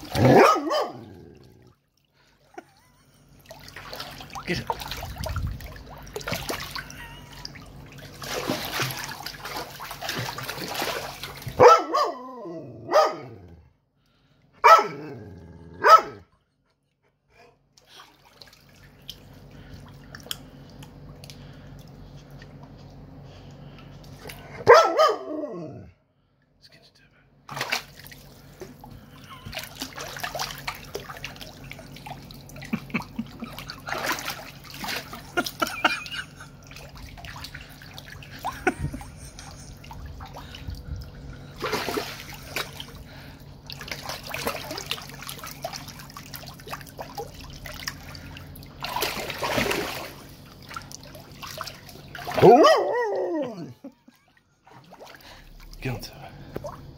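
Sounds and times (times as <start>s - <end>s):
steady low hum: 0.0s - 56.9s
dog splashing in water: 3.4s - 11.8s, 27.5s - 52.8s.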